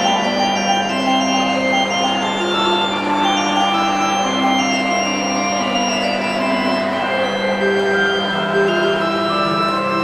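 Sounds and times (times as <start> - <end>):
slow organ music: 0.0 - 10.0.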